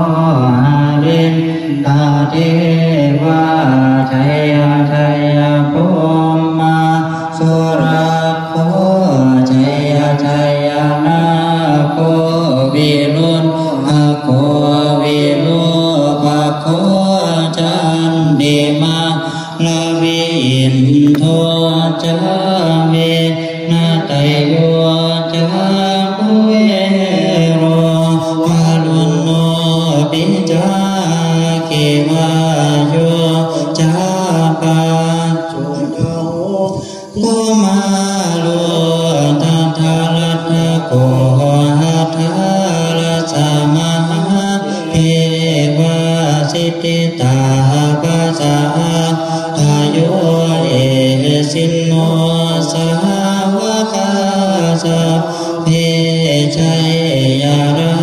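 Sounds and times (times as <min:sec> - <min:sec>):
monks chanting in unison: 0:00.0 - 0:58.0.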